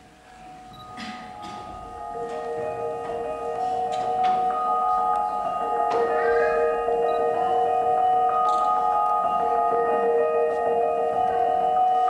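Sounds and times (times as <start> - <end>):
bell-like ringing tones: 0.4 - 12.0
sharp struck notes: 0.5 - 12.0.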